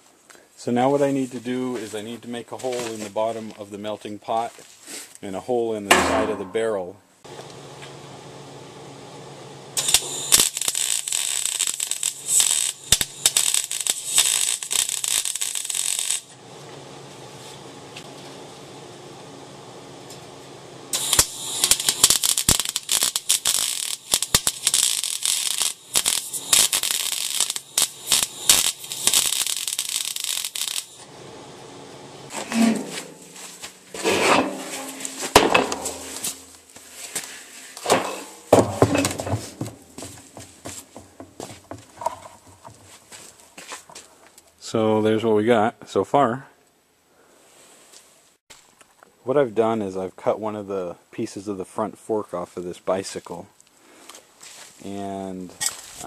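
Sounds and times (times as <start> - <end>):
arc welding crackling: 7.3 - 37.9, 38.5 - 43.5
low hum: 31.0 - 36.6
metal knocks and scrapes: 32.3 - 36.5, 37.8 - 42.9.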